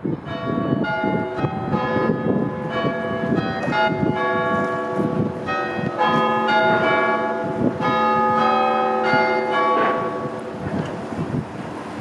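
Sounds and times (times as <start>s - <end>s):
tower bells ringing: 0.0s - 10.6s
wind or traffic rumble: 0.0s - 12.0s.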